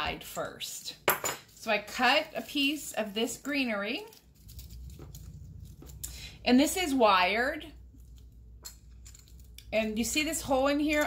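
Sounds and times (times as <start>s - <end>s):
rustling of artificial garland: 0.0s - 6.7s
low steady hum: 1.3s - 11.0s.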